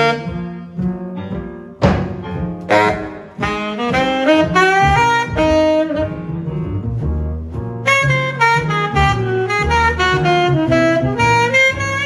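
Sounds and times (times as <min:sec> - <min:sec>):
tenor saxophone: 0:00.0 - 0:01.0, 0:02.6 - 0:06.7, 0:07.8 - 0:12.0
double bass: 0:00.0 - 0:12.0
drums: 0:00.0 - 0:12.0
piano: 0:00.0 - 0:12.0.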